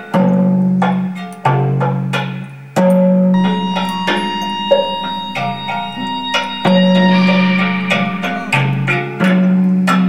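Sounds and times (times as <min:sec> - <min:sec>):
thumb piano plucked notes: 0:03.4 - 0:09.1
low sustained tone: 0:03.4 - 0:09.4.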